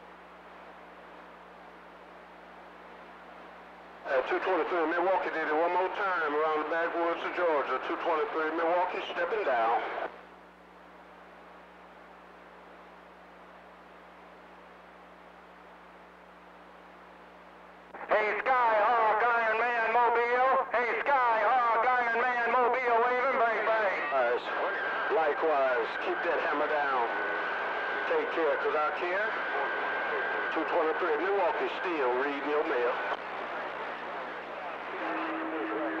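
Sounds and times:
radio receiver hiss: 0:00.0 - 0:36.0
warbling radio transmission: 0:18.0 - 0:36.0.

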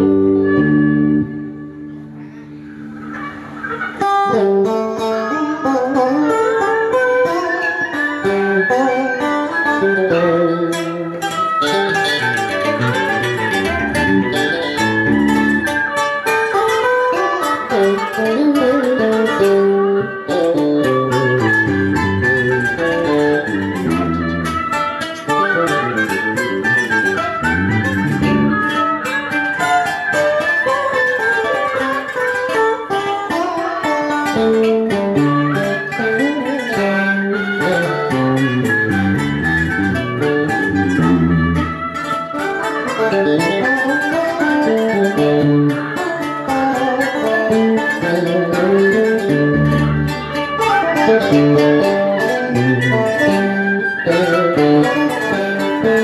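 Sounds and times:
guitar fast bending runs: 0:00.0 - 0:56.0
plucked string music: 0:00.0 - 0:56.0.

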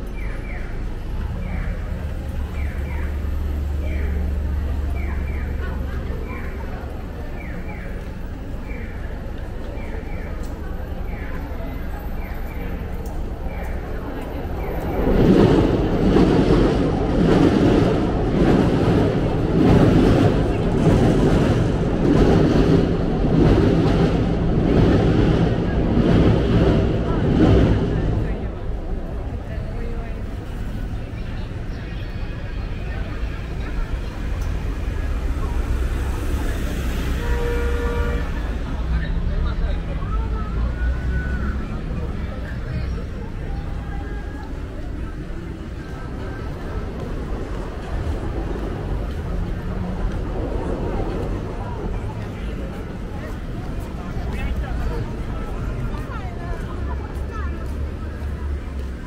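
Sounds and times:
rhythmic rail clatter: 0:00.0 - 0:40.8, 0:41.7 - 0:59.0
passers-by: 0:00.0 - 0:59.0
street traffic: 0:00.0 - 0:59.0
train rumbling over bridge: 0:00.0 - 0:59.0.

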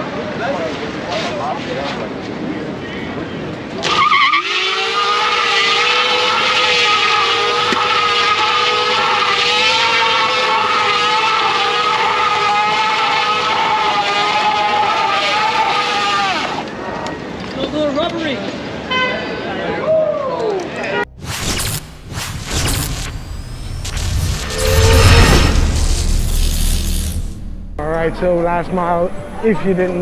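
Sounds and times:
tyre squealing on asphalt: 0:03.8 - 0:16.7.

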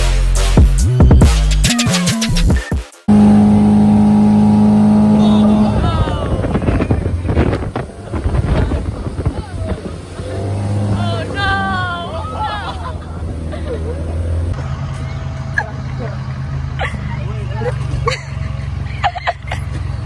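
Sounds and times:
boat motor hum: 0:03.1 - 0:20.0
car engine idling: 0:03.1 - 0:20.0
voices: 0:03.2 - 0:14.6, 0:15.5 - 0:19.8.

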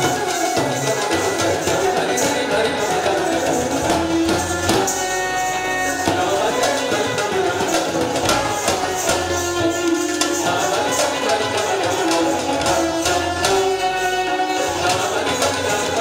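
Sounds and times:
sitar melody: 0:00.0 - 0:16.0
tabla rhythm: 0:00.0 - 0:16.0.

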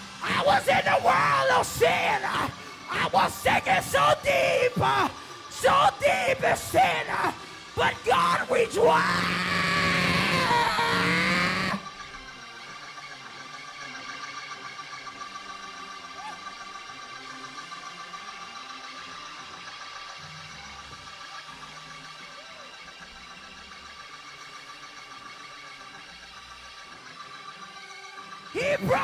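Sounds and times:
preacher shouting: 0:00.0 - 0:11.9, 0:16.2 - 0:16.5, 0:28.6 - 0:29.0.

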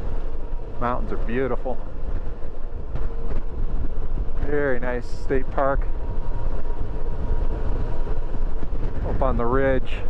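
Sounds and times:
road noise: 0:00.0 - 0:10.0
wind rush on microphone: 0:00.0 - 0:10.0.

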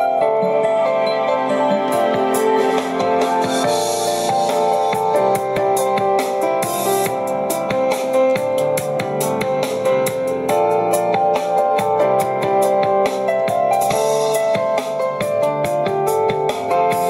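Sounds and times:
instrumental music through speaker: 0:00.0 - 0:17.0.

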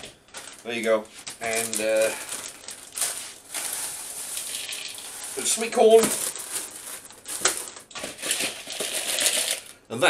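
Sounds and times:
corn kernels rattling into bowl: 0:00.3 - 0:09.8.

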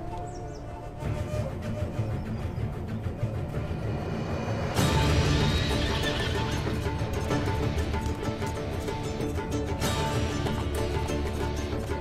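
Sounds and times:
dramatic background music: 0:00.0 - 0:12.0.

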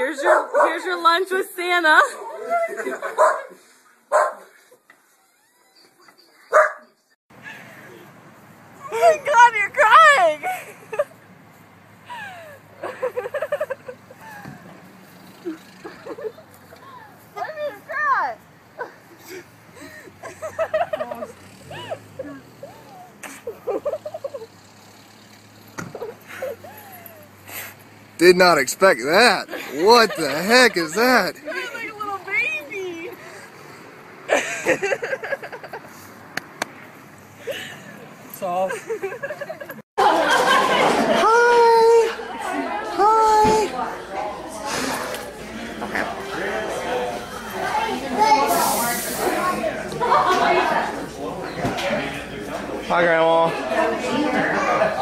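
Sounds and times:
people talking indistinctly: 0:28.2 - 0:33.6
short hissing rustle: 0:48.4 - 0:49.5.

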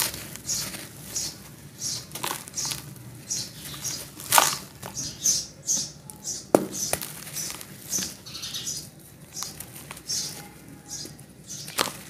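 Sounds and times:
sharp knocks: 0:06.5 - 0:07.0.

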